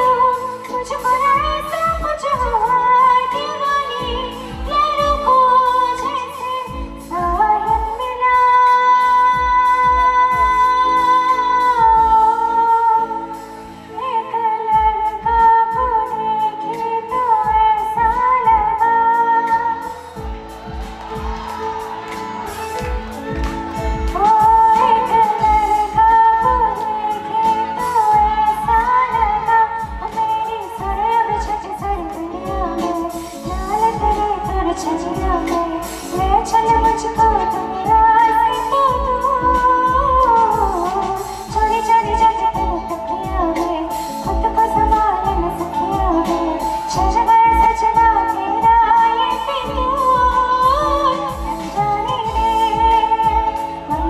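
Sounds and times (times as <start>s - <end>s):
instrumental music with steady beat: 0.0s - 54.0s
woman singing into a microphone: 0.0s - 54.0s.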